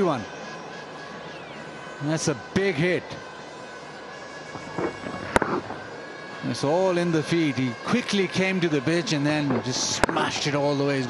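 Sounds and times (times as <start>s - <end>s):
broadcast background noise: 0.0s - 11.0s.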